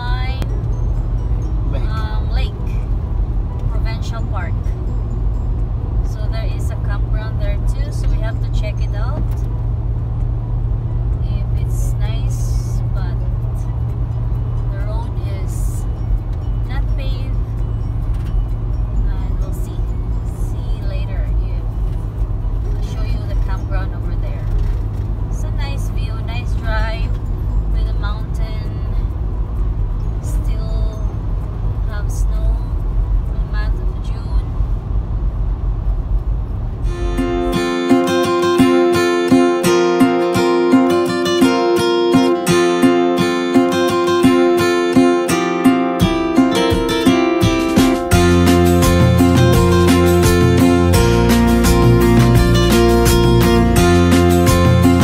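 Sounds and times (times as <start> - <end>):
car engine and tyres droning: 0.0 - 55.0.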